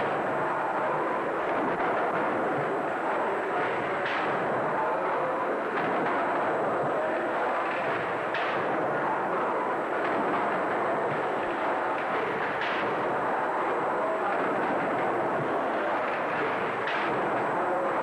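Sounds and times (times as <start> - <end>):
steam pumping engines running: 0.0 - 18.0.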